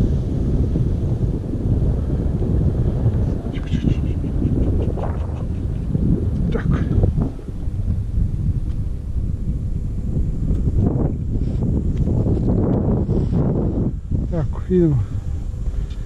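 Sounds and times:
wind buffeting microphone: 0.0 - 16.0.

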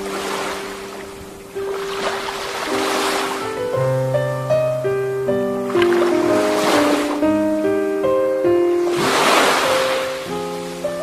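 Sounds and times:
ocean waves washing in: 0.0 - 3.8, 5.6 - 11.0
calm instrumental music: 0.0 - 11.0.

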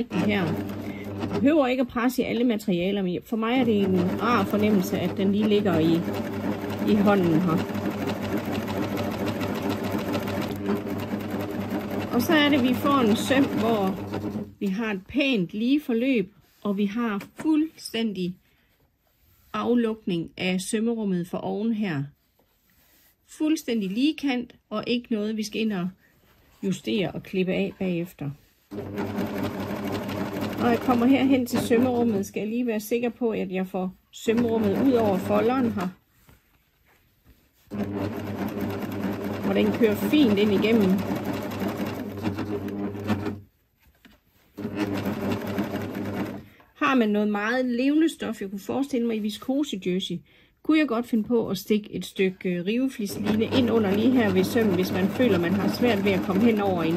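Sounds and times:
sewing machine stitching: 0.0 - 2.0, 3.4 - 14.8, 28.7 - 32.4, 34.2 - 36.0, 37.7 - 43.5, 44.5 - 46.6, 53.1 - 56.9.

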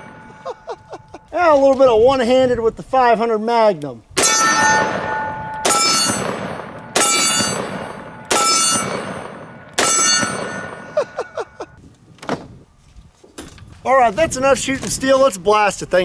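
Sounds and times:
steel target ringing: 0.0 - 1.2, 4.2 - 11.4
revolver gunshots: 4.2 - 11.0.

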